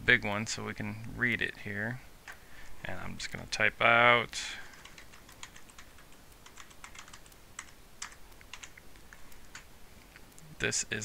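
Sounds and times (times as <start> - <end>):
keyboard keystroke clicks: 4.7 - 9.7.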